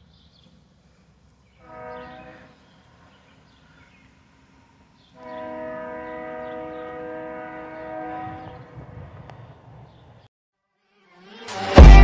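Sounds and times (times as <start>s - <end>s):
faint horn chord: 1.5s - 3.8s, 4.5s - 8.8s.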